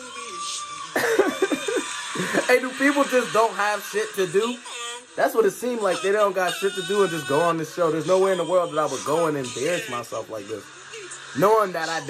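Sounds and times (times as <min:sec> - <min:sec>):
person singing: 0:00.0 - 0:12.0
man laughing loudly: 0:01.0 - 0:04.1.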